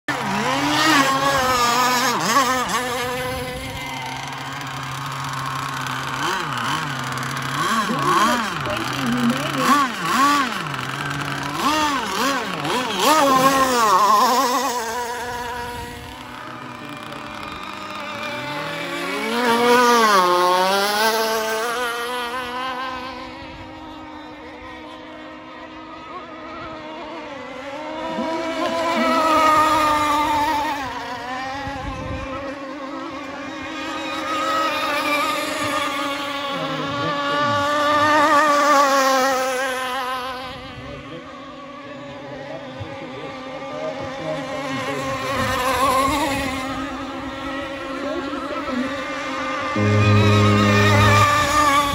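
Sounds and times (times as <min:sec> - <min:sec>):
model boat motors whining: 0:00.1 - 0:51.9.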